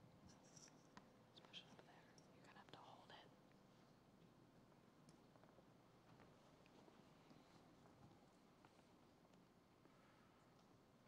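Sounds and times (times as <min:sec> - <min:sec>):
faint whispering: 0:01.3 - 0:03.4.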